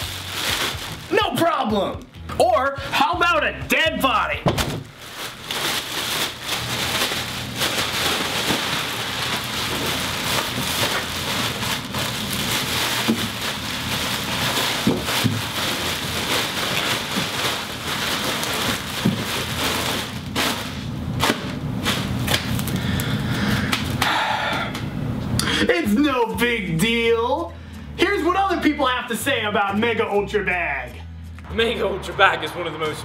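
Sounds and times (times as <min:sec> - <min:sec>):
plastic bags rustling and crinkling: 0:00.0 - 0:02.0, 0:04.6 - 0:23.1.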